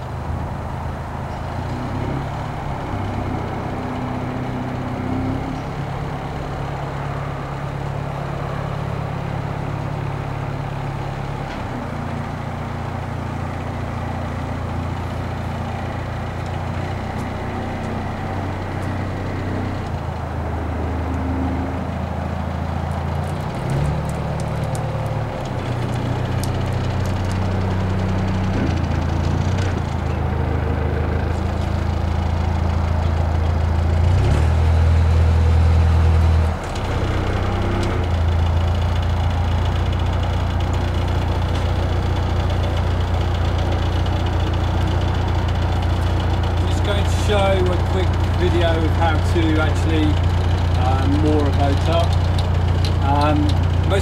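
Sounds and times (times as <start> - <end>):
diesel engine humming: 0.0 - 54.0.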